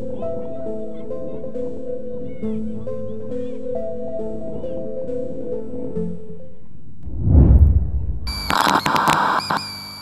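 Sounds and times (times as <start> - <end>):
low rumble: 7.0 - 8.6
glitchy electronic chord: 8.3 - 9.8
quick glitchy clicks: 8.3 - 10.0.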